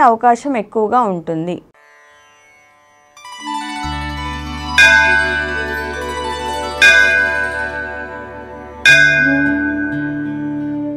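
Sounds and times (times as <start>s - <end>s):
bell ringing: 3.4s - 10.9s
soft devotional music: 3.4s - 10.9s
steady low drone: 3.8s - 10.9s.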